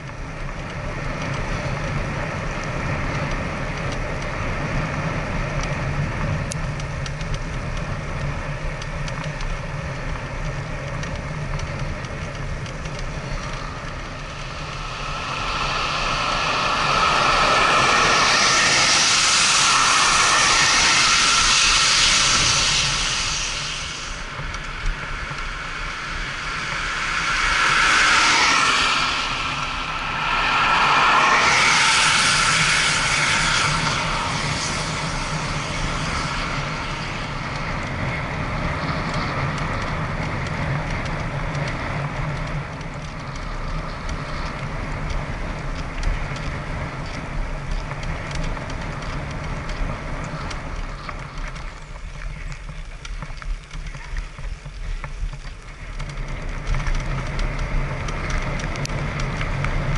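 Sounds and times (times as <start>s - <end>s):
vehicles passing with tyre hiss: 0.0s - 59.9s
wind and road noise: 0.0s - 59.9s.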